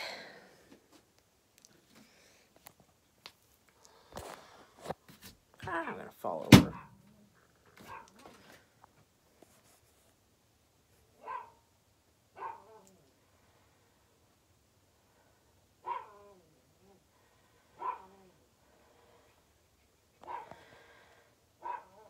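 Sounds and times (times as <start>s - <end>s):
dog barking faintly: 7.8s - 8.3s, 11.2s - 11.7s, 12.4s - 13.1s, 15.8s - 17.0s, 17.8s - 18.4s, 21.6s - 22.0s.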